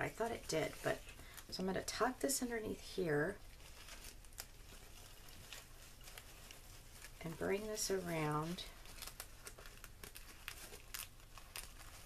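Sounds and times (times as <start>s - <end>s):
fabric ribbon rustling: 0.0s - 12.0s.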